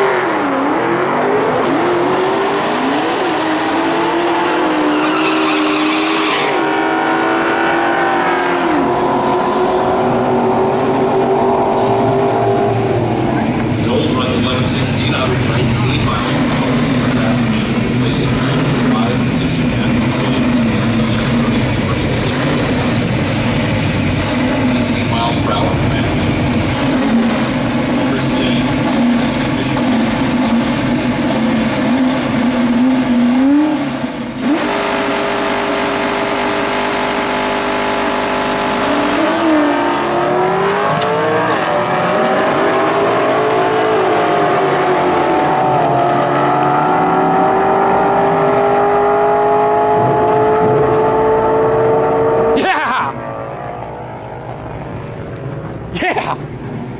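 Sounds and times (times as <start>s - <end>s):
car engine revving and accelerating: 0.0s - 55.6s.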